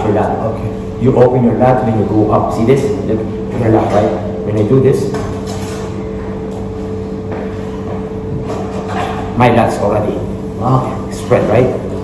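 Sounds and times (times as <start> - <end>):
steady hum with held tones: 0.0 - 12.0.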